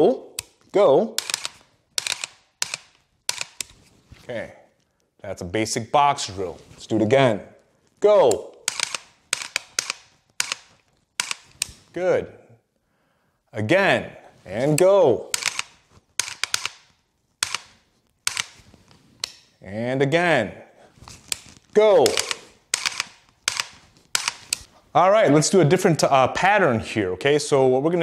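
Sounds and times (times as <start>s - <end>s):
metallic trigger clicks: 1.2s - 3.8s, 8.3s - 11.9s, 14.7s - 19.5s, 21.3s - 24.7s.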